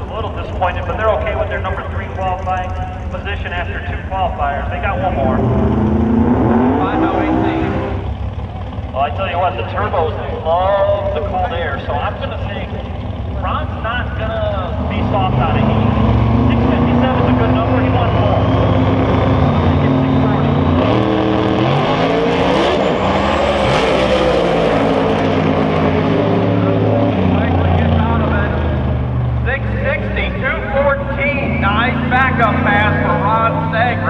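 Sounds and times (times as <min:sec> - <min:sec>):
drag car engines at full throttle: 0:00.0 - 0:34.0.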